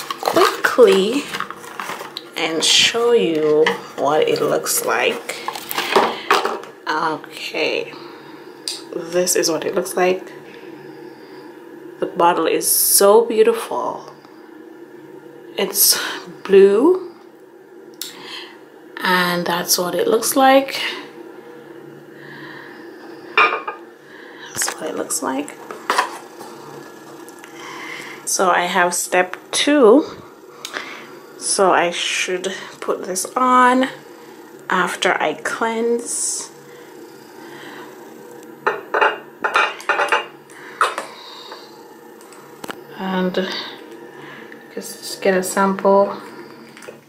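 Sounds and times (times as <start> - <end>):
low steady hum: 0.0 - 47.0.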